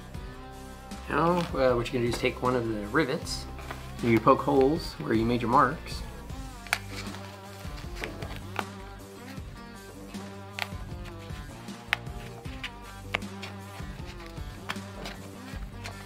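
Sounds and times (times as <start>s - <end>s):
background music: 0.0s - 16.0s
rivet punching metal foil: 6.5s - 16.0s.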